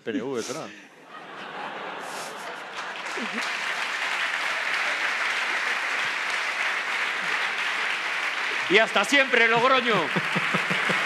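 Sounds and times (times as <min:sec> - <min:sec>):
audience applauding: 0:01.2 - 0:11.0.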